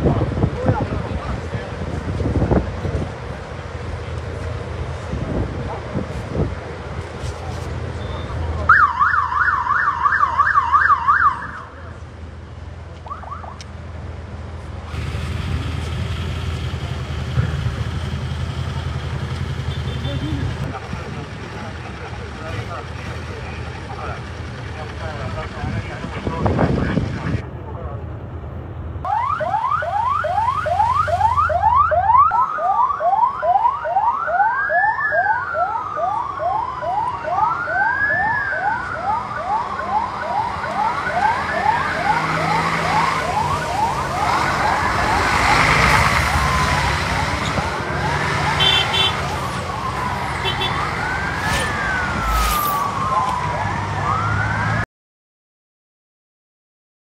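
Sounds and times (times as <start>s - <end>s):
vehicle engines idling: 0.0s - 9.5s, 11.0s - 31.9s
police siren yelping and wailing: 8.7s - 11.8s, 13.1s - 13.6s, 29.1s - 54.8s.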